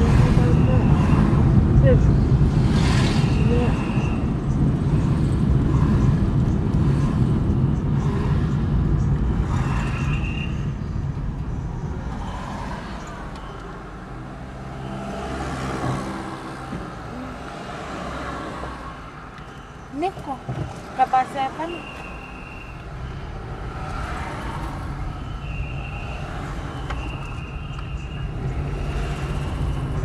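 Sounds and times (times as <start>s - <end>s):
road traffic rumble: 0.0s - 30.0s.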